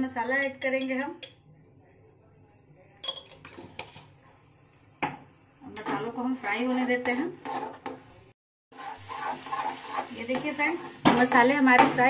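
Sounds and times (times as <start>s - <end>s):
metal spoon clinking on steel pan: 0.3s - 1.5s, 3.0s - 3.9s.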